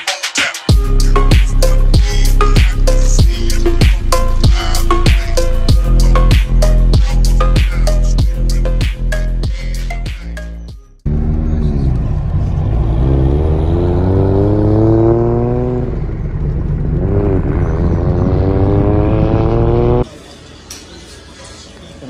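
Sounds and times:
music: 0.0 - 12.6
car engine accelerating hard: 11.0 - 20.0.

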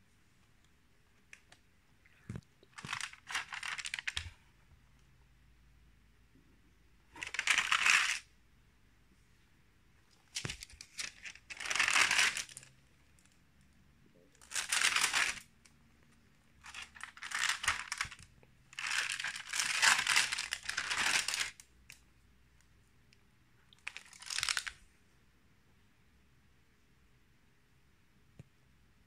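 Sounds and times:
album pages rustling: 2.2 - 4.4, 7.1 - 8.2, 10.1 - 12.7, 14.4 - 15.5, 16.6 - 21.6, 23.8 - 24.8.

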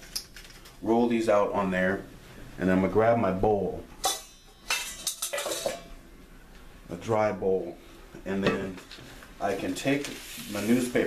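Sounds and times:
metal mixing bowl clattering: 4.1 - 5.9.

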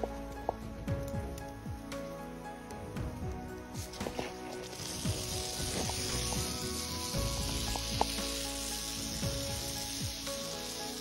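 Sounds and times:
faint background music: 0.0 - 11.0
rattlesnake rattle buzzing: 3.8 - 11.0.

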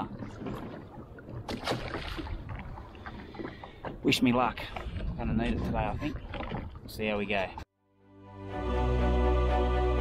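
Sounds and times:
water lapping against hull: 0.0 - 7.7
fish splashing into water: 1.4 - 2.5.

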